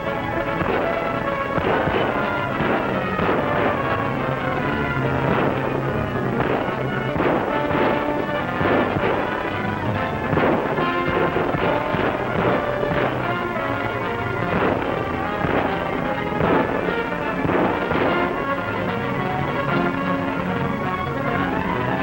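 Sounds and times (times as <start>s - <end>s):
dramatic orchestral music: 0.0s - 22.0s
short sharp cracks: 0.0s - 22.0s.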